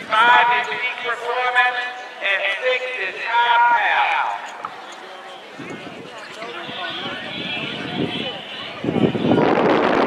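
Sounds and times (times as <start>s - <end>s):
voices talking: 0.0s - 9.8s
outdoor background noise: 0.0s - 10.0s.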